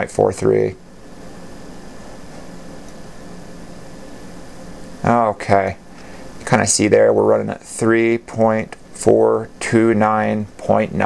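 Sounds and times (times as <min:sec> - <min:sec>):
computer fans whirring: 0:00.0 - 0:11.0
faint low hum: 0:00.0 - 0:11.0.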